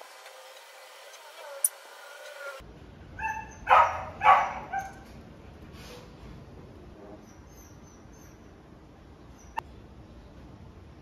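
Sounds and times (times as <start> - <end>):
dog barking loudly: 3.2 - 5.0
dog yipping: 3.2 - 5.0.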